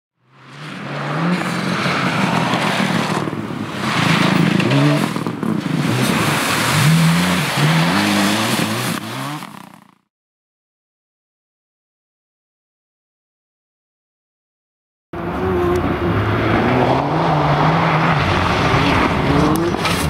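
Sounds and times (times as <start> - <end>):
rally car engines revving: 0.2 - 10.0, 15.2 - 20.0
tyres rushing on gravel: 0.5 - 10.0.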